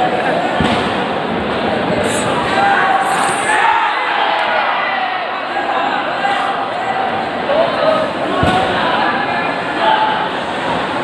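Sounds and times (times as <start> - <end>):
spectators shouting and chattering: 0.0 - 11.0.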